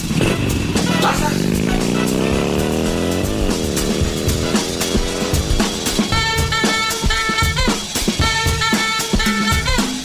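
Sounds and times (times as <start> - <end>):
vehicle engine accelerating: 0.0 - 7.1.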